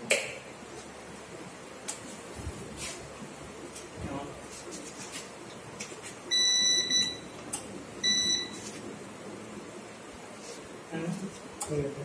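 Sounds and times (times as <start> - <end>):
ups unit beeping: 6.3 - 8.8.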